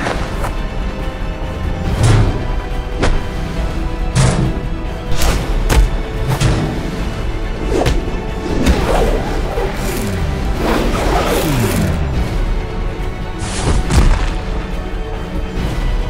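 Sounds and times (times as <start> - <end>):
action film score: 0.0 - 16.0
falling swooshes: 7.5 - 12.2.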